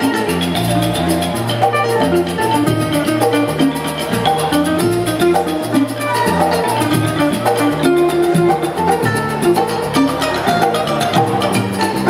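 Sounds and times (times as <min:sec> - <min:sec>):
bass guitar: 0:00.0 - 0:12.0
electric guitar: 0:00.0 - 0:12.0
hand drum: 0:00.0 - 0:12.0
mallet percussion instrument: 0:00.0 - 0:12.0
bamboo flute: 0:05.3 - 0:09.1.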